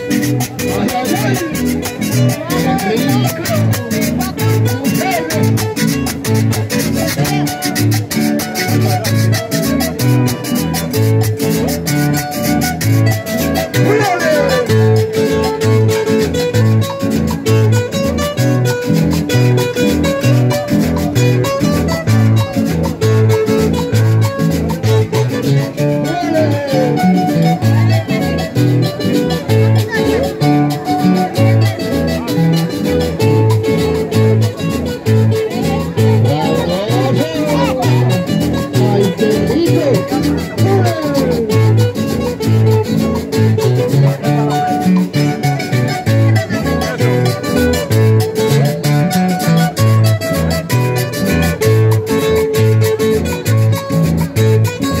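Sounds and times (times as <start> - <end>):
acoustic guitars strummed: 0.0 - 55.0.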